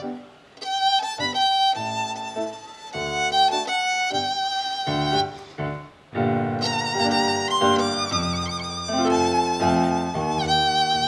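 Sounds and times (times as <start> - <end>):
tango band playing: 0.0 - 11.0
violin melody: 0.0 - 11.0.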